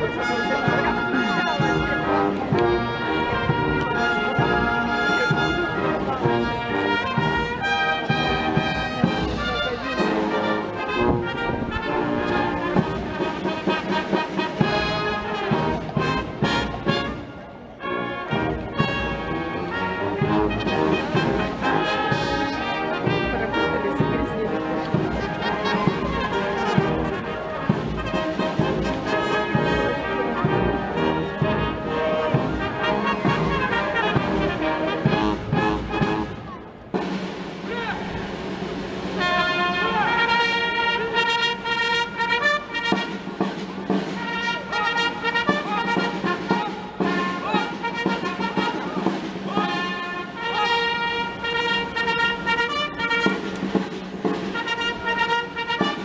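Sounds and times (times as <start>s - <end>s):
military brass band playing: 0.0s - 56.0s.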